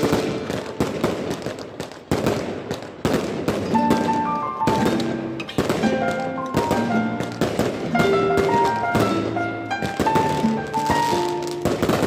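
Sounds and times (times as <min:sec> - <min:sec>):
firework bangs: 0:00.0 - 0:12.0
fireworks crackling: 0:00.0 - 0:12.0.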